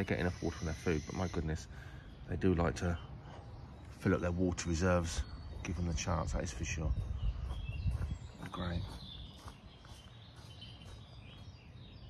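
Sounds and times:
distant bird chirps: 0.0 - 12.0.

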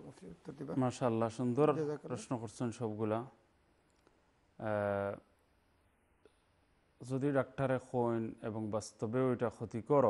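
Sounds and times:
man speaking: 0.0 - 3.4, 4.6 - 5.3.

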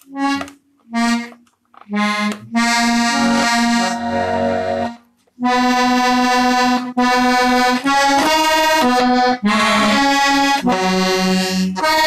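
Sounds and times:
accordion chord: 0.0 - 12.0.

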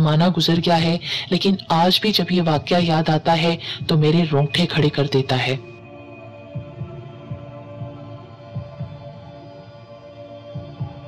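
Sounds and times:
eerie droning chord: 5.6 - 11.0
low heartbeat-like thuds: 6.6 - 9.5, 10.5 - 11.0.

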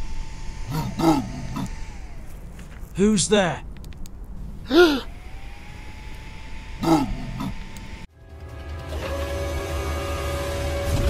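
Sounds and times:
low background hum: 0.0 - 11.0
pitched vocal cries: 4.6 - 5.1, 6.8 - 7.6.

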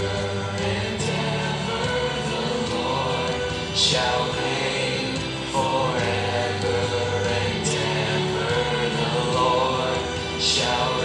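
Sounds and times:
choir-like backing voices: 0.0 - 11.0
musical accompaniment: 0.0 - 11.0
person singing into a microphone: 0.0 - 11.0.

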